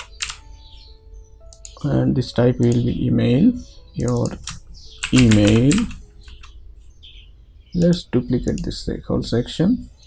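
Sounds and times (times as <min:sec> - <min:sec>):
keyboard and mouse clicks: 0:00.0 - 0:00.4, 0:04.0 - 0:06.6
faint background music: 0:00.0 - 0:10.0.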